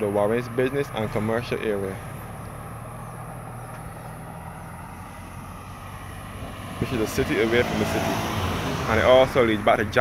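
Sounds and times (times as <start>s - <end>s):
car engine running slowly: 0.0s - 7.5s.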